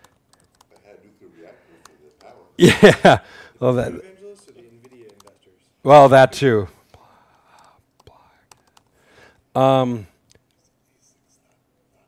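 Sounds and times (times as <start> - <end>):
laptop keys typing: 0.0 - 1.1, 1.8 - 2.4, 4.2 - 5.5, 7.2 - 9.0.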